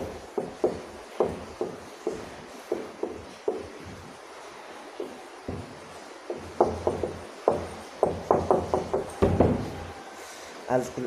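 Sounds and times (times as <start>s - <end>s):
marker writing on whiteboard: 0.0s - 4.1s, 5.0s - 9.9s.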